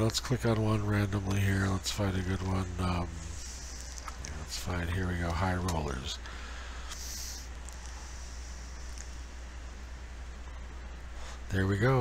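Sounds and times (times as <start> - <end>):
faint hiss: 0.0 - 12.0
low electrical hum: 0.0 - 12.0.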